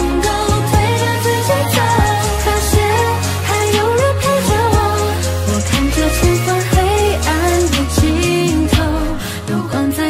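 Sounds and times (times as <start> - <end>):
pop music with drum beat: 0.0 - 10.0.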